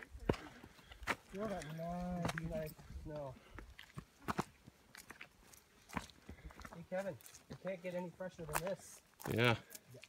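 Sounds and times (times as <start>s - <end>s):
footsteps crunching on trail: 0.0s - 10.0s.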